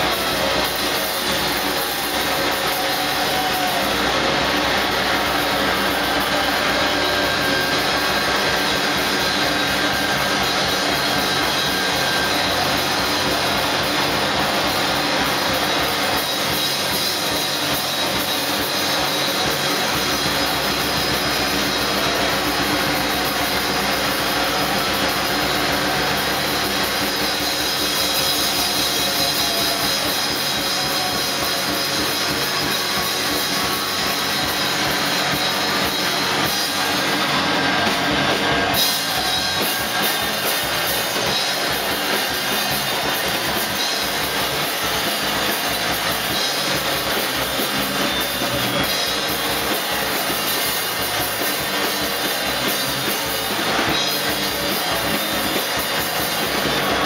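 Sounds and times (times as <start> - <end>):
distorted noise-rock band: 0.0 - 57.0.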